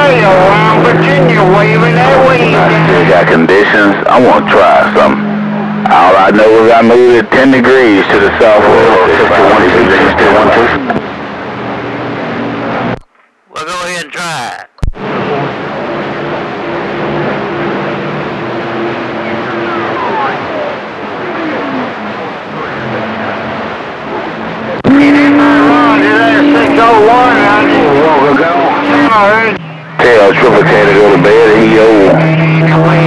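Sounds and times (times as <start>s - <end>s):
radio static hiss: 5.9s - 11.1s, 12.8s - 15.6s, 21.1s - 33.0s
heterodyne tones: 9.2s - 33.0s
garbled warbling radio voice: 13.5s - 14.8s.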